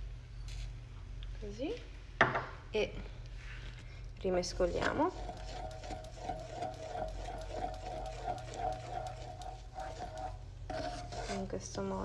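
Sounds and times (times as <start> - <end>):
mechanical whirring hum: 0.0 - 12.0
spatula scraping saucepan: 4.3 - 12.0.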